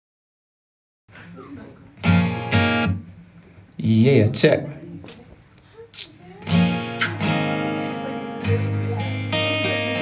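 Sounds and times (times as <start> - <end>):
acoustic guitar chords strummed: 2.0 - 3.2, 6.4 - 10.0.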